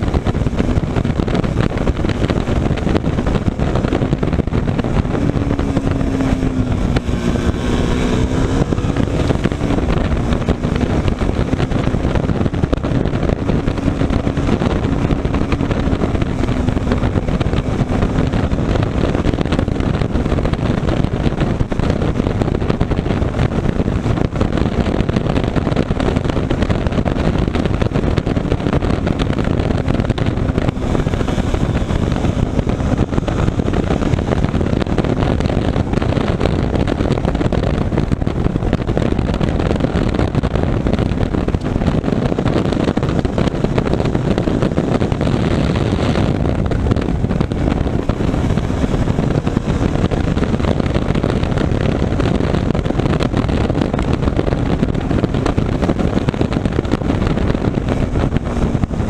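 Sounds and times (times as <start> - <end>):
motorcycle engine running: 0.0 - 59.0
wind rush on microphone: 0.0 - 59.0.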